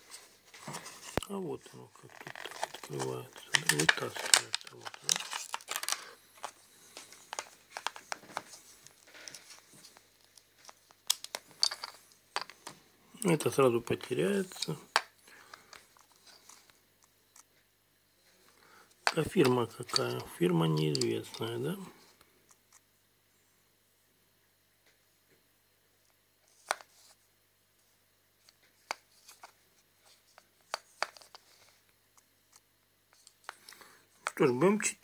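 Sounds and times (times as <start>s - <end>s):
plastic clicks and rubbing: 1.9s - 12.8s, 19.0s - 21.5s, 26.5s - 27.2s, 28.4s - 31.8s.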